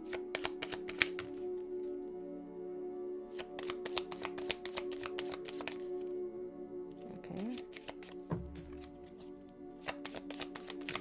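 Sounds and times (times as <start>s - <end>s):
soft background music: 0.0s - 11.0s
cards being shuffled: 0.1s - 1.4s, 3.4s - 5.9s, 7.5s - 11.0s
low thump: 8.3s - 8.9s.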